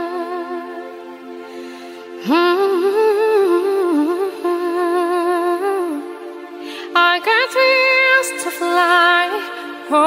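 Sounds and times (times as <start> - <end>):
sustained backing chords: 0.0 - 10.0
woman singing pop ballad: 0.0 - 10.0.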